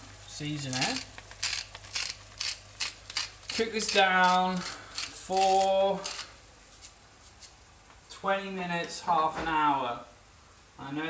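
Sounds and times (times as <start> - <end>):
salt grinder crunching: 0.6 - 6.3.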